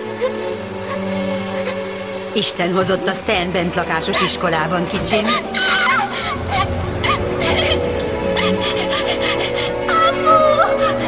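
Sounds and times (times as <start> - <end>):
sustained music notes: 0.0 - 11.0
girl sobbing: 0.1 - 1.9, 5.3 - 11.0.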